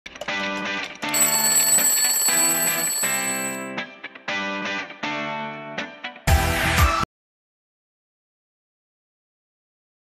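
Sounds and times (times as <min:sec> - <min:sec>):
alarm clock bells ringing: 0:01.1 - 0:03.7.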